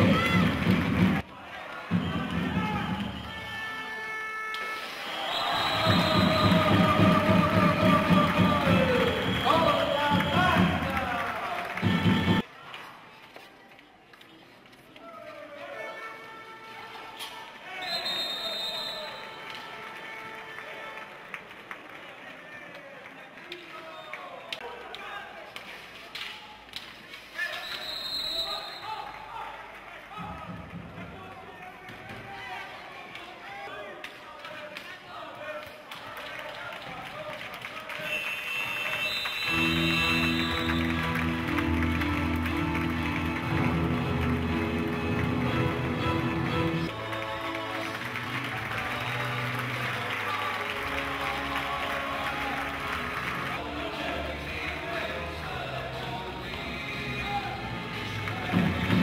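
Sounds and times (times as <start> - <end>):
arena noise: 0.0 - 59.0
referee's whistle: 1.9 - 7.1, 8.7 - 10.9, 17.8 - 19.4, 27.5 - 29.1, 38.0 - 41.2
indistinct voices: 46.5 - 59.0.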